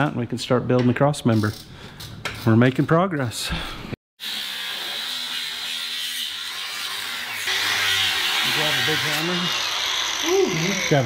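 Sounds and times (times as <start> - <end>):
angle grinder cutting metal: 4.2 - 11.0.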